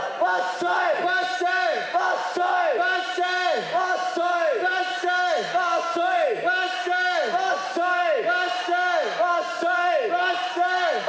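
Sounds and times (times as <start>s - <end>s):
group shouting rhythmic chant: 0.0s - 11.0s.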